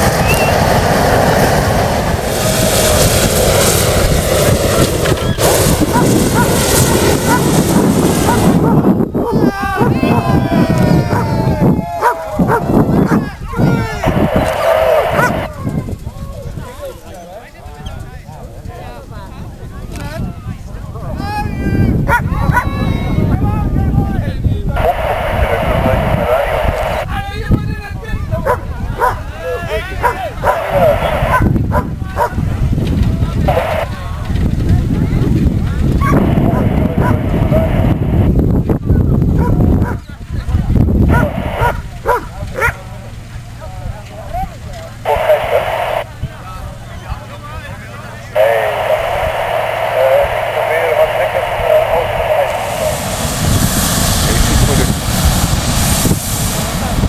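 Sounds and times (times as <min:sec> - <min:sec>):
wind rumble on microphone: 0:00.0 - 0:47.8, 0:48.4 - 0:57.0
people's voices: 0:04.6 - 0:55.5
dog barking: 0:05.9 - 0:08.8, 0:15.1 - 0:15.4, 0:28.4 - 0:29.2, 0:30.0 - 0:30.6, 0:31.3 - 0:32.4, 0:39.4 - 0:40.0, 0:41.1 - 0:42.8.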